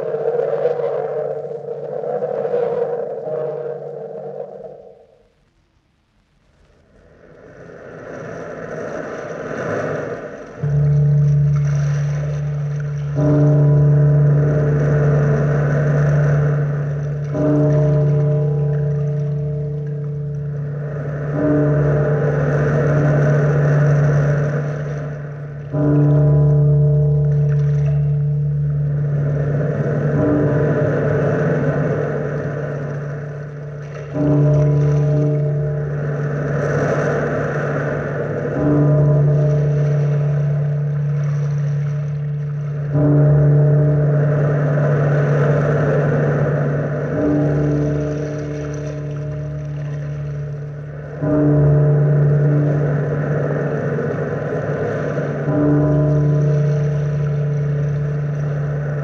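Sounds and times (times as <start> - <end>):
surf washing: 0.0 - 5.8, 6.4 - 59.0
deep bell tolling: 10.6 - 59.0.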